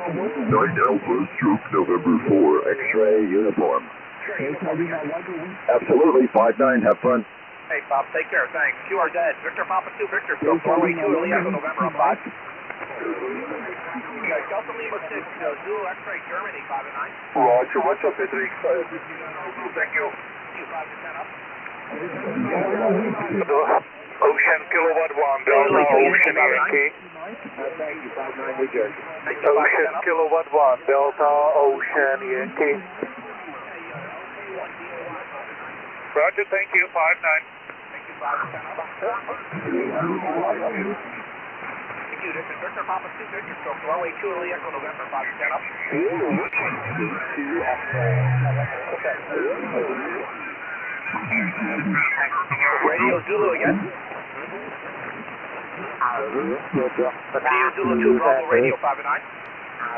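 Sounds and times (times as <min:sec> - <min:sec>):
person talking over radio: 0:00.0 - 0:15.1, 0:22.0 - 0:26.9, 0:29.3 - 0:33.2, 0:38.0 - 0:41.1, 0:44.9 - 0:54.0, 0:56.0 - 0:59.2
radio static hiss: 0:00.0 - 0:59.9.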